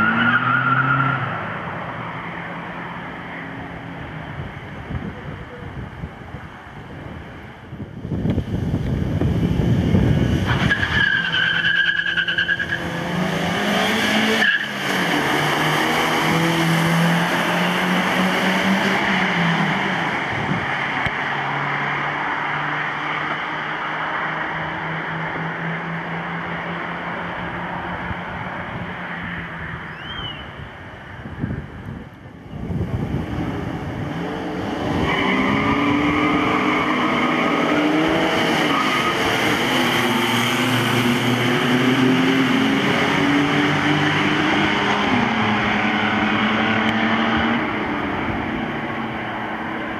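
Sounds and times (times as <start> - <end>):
car engines revving: 0.0 - 49.9
tyre and road noise: 0.0 - 49.9.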